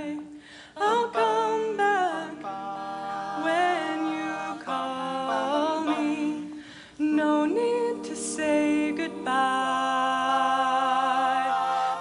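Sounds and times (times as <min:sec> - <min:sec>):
a cappella group singing harmonies: 0:00.0 - 0:12.0.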